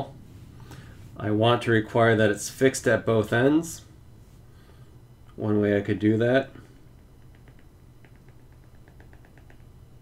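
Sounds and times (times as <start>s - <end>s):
stylus tapping on tablet screen: 7.2s - 9.7s.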